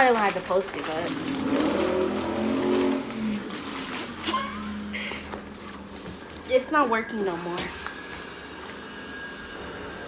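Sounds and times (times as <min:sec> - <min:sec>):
plastic crackles: 0:00.0 - 0:08.2
vinyl float crinkling: 0:00.0 - 0:08.3.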